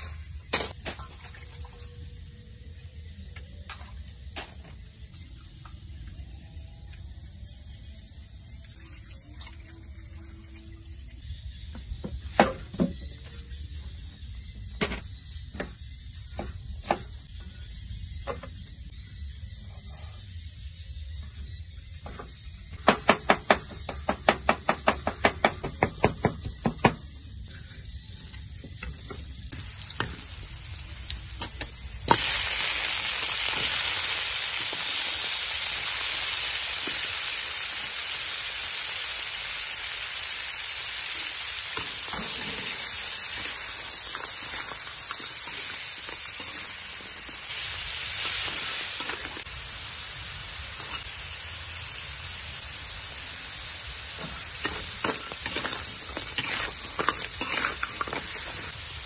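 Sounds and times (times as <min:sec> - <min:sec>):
food sizzling in hot oil: 0:29.4 - 0:59.0
metal spatula scraping a wok: 0:50.8 - 0:51.2, 0:54.2 - 0:58.8.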